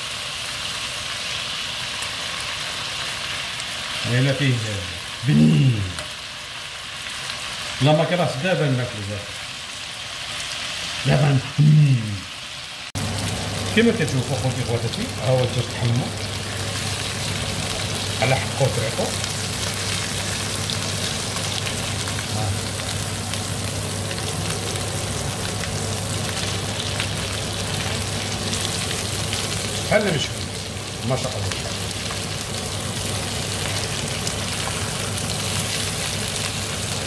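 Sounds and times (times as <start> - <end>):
chicken sizzling in a pan: 0.0 - 37.0.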